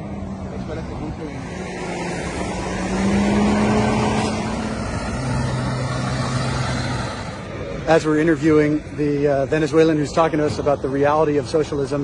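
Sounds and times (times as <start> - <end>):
coach diesel engine passing: 0.0 - 12.0
road noise: 0.0 - 12.0.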